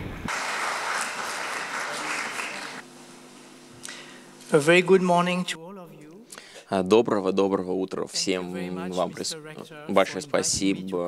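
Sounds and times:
audience applauding: 0:00.3 - 0:03.0.

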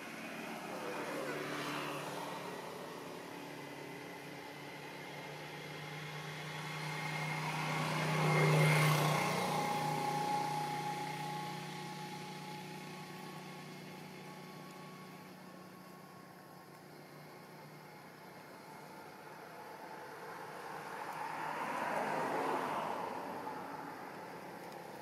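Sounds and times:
passing engine drone: 0:00.0 - 0:16.2.

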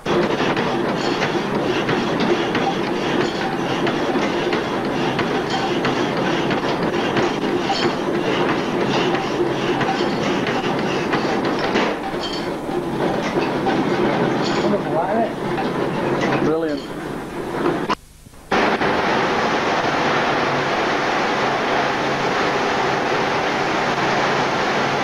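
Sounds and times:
power hacksaw clattering: 0:00.0 - 0:17.9.

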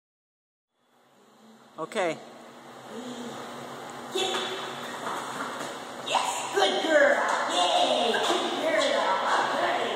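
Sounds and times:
faint buzzing hum: 0:00.7 - 0:09.9.

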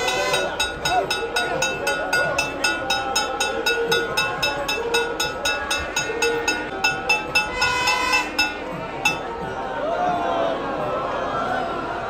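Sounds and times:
ringing metallic strike: 0:00.0 - 0:09.5
crowd chatter: 0:00.0 - 0:12.0.

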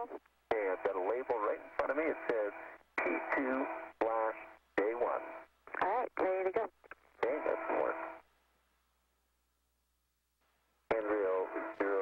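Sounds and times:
radio voices: 0:00.0 - 0:08.2, 0:10.9 - 0:12.0.

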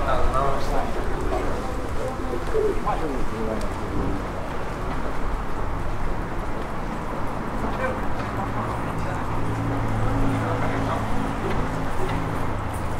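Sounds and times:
low street hum: 0:00.0 - 0:12.9
voices of passers-by: 0:00.0 - 0:12.9
pigeon cooing: 0:01.0 - 0:03.4.

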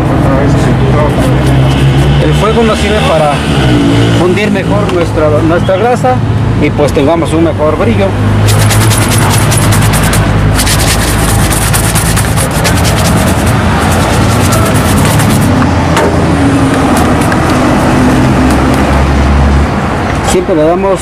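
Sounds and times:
vehicle engine humming: 0:00.0 - 0:05.3, 0:08.0 - 0:20.2
traffic noise: 0:00.0 - 0:21.0
polish rubbed on leather shoe: 0:01.0 - 0:02.7, 0:08.4 - 0:15.5, 0:16.8 - 0:18.8.

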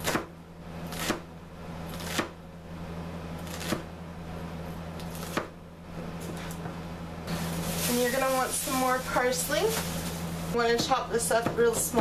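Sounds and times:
knife chopping on plastic board: 0:02.0 - 0:02.4, 0:05.2 - 0:05.6, 0:10.7 - 0:12.0.

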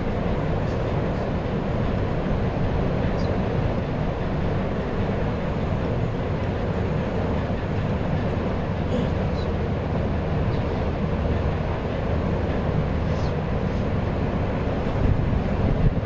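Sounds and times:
low rumbling background noise: 0:00.0 - 0:16.0.

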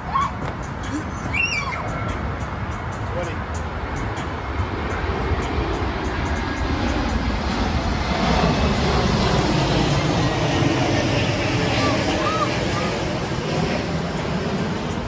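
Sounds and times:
distant engine rumble: 0:00.0 - 0:15.0
faint voices: 0:11.6 - 0:14.5.

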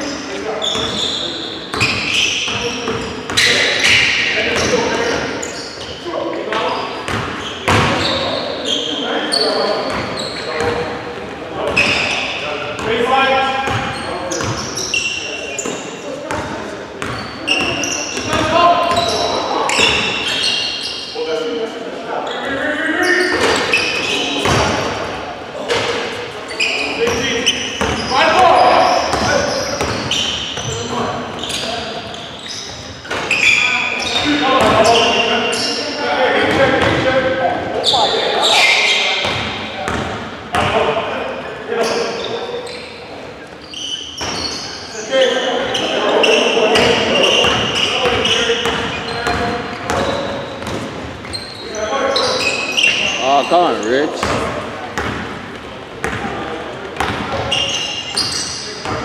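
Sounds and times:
sneakers squeaking: 0:00.0 - 0:59.0.

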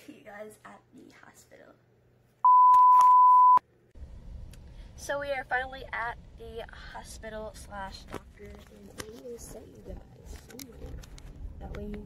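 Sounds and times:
electronic bleep: 0:02.5 - 0:03.6.

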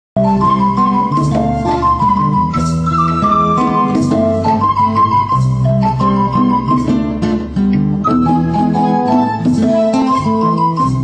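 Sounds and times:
acoustic guitars: 0:00.2 - 0:11.0
hand drum: 0:00.2 - 0:11.0.

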